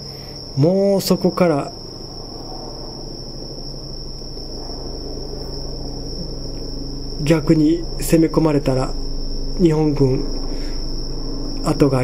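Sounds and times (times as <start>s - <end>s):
low steady hum: 0.0s - 12.0s
night insects trilling: 0.0s - 12.0s.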